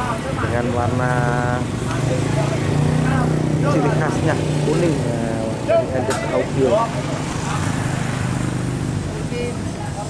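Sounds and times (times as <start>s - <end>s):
vehicle engines rumbling: 0.0s - 10.0s.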